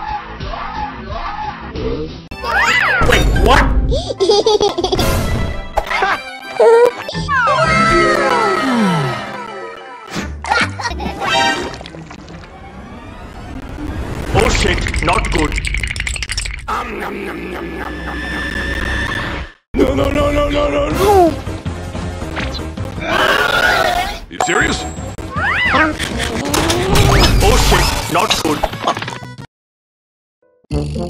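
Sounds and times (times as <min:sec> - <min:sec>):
background music: 0:00.0 - 0:12.8, 0:19.8 - 0:27.1
cartoon character voice: 0:02.4 - 0:03.5, 0:06.6 - 0:08.6, 0:25.3 - 0:27.8
cartoon voice giggling: 0:05.8 - 0:07.6.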